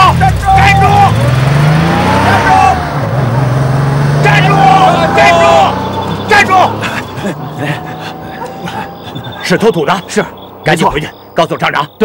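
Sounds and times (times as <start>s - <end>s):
truck engine revving: 0.0s - 12.0s.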